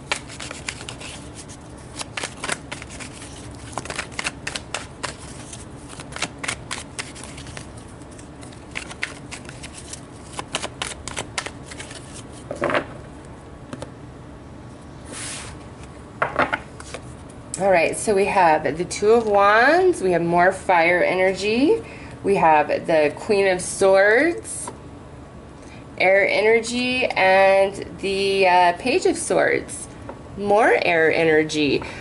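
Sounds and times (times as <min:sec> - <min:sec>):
cards being shuffled by hand: 0:00.0 - 0:12.8, 0:16.7 - 0:17.2.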